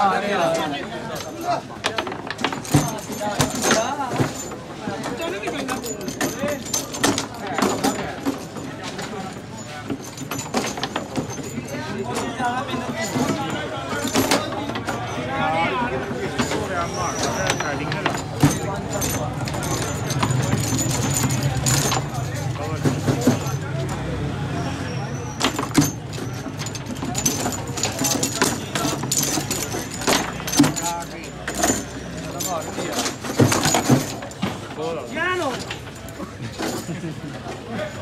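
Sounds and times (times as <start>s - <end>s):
people's voices: 0.0s - 38.0s
steel rods rattling: 0.5s - 24.0s, 25.3s - 38.0s
foosball clacks: 0.6s - 15.2s.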